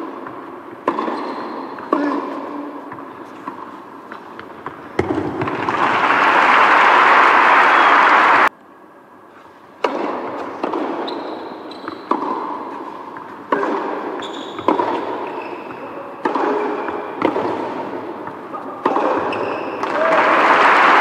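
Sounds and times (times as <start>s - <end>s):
racket hitting ball: 0.0s - 5.8s, 9.8s - 20.0s
murmur in indoor hall: 1.5s - 10.6s, 15.2s - 21.0s
crowd applauding: 5.5s - 8.5s, 19.9s - 21.0s.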